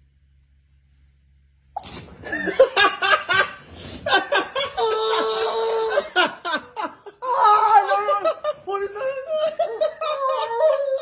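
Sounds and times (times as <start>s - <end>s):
laughter: 2.2s - 11.0s.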